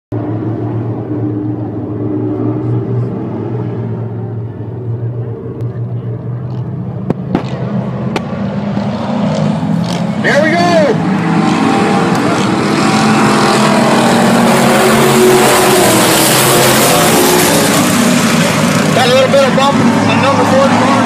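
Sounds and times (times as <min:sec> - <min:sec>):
race car engines droning: 0:00.1 - 0:21.0.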